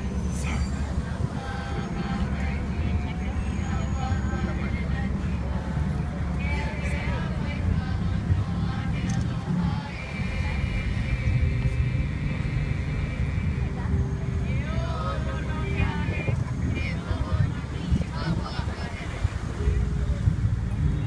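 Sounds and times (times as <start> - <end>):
group of voices singing: 0.0 - 20.8
steady low rumble: 0.0 - 21.0.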